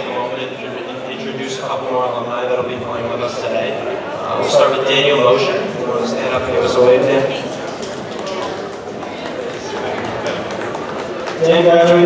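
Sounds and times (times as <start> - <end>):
murmur of crowd: 0.0 - 12.0
audience clapping: 6.9 - 12.0.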